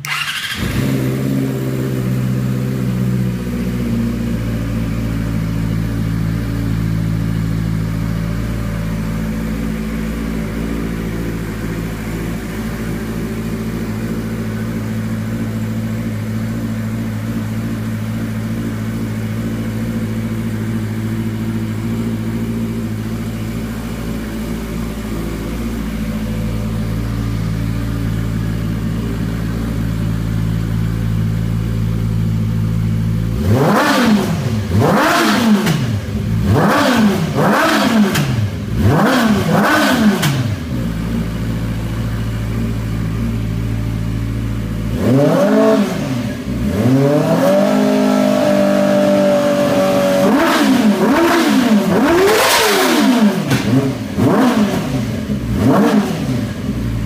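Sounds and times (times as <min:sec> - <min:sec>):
quad engine idling and revving: 0:00.0 - 0:57.0.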